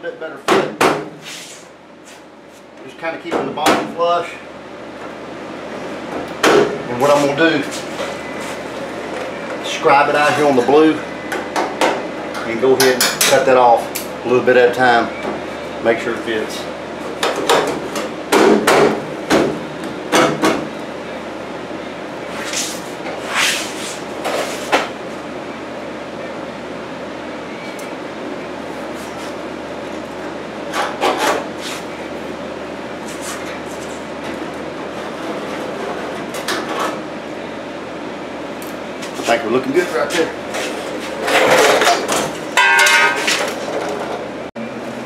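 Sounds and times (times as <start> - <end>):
steady low hum: 0.0 - 45.0.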